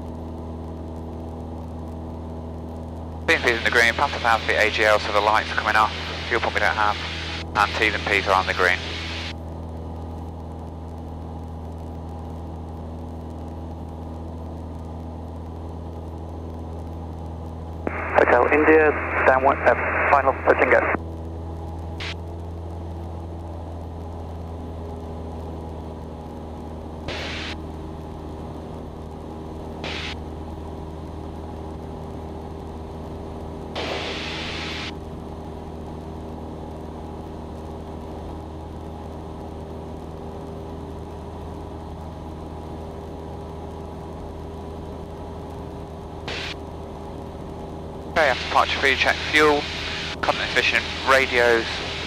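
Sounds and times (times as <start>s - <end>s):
propeller plane engine droning: 0.0s - 52.0s
radio static hiss: 3.2s - 10.9s, 13.7s - 24.1s, 27.0s - 27.6s, 29.6s - 30.2s, 33.3s - 35.5s, 46.2s - 46.7s, 47.4s - 52.0s.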